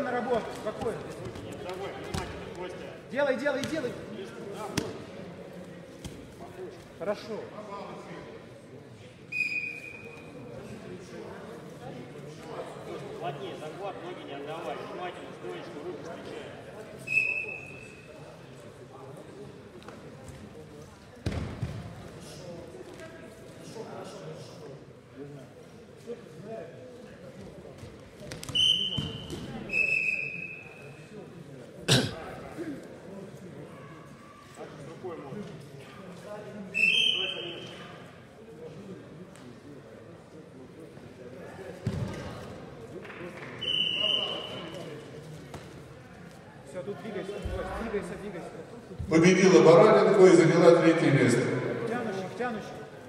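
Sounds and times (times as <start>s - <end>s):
murmur of voices echoing: 0.0s - 53.0s.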